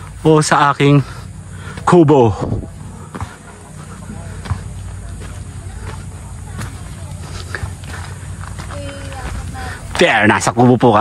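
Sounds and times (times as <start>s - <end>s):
footsteps on dirt path: 0.0s - 11.0s
low steady rumble: 0.0s - 11.0s.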